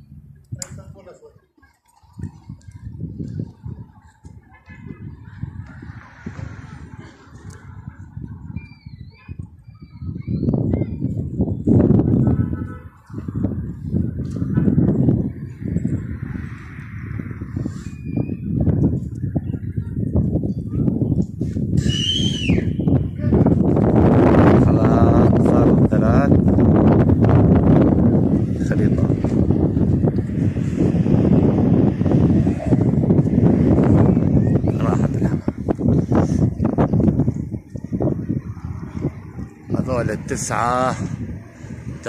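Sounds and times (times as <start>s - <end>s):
wind buffeting microphone: 0.0s - 42.0s
high bird chirps: 17.8s - 18.5s.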